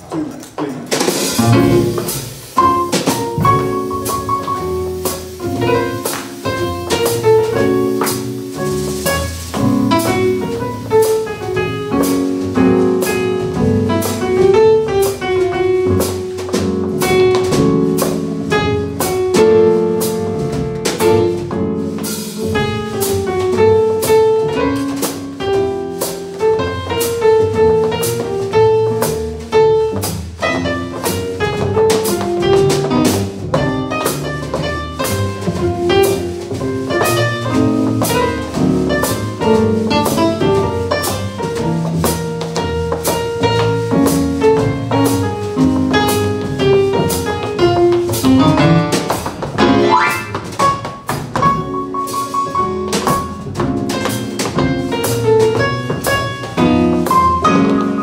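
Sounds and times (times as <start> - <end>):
drum kit beat: 0.0 - 58.0
piano melody: 1.0 - 58.0
double bass: 1.1 - 58.0.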